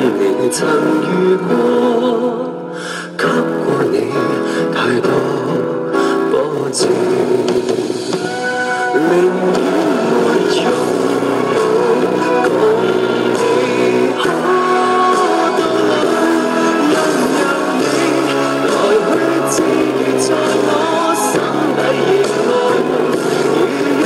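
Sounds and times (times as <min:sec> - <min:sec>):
recorded pop song: 0:00.0 - 0:24.0.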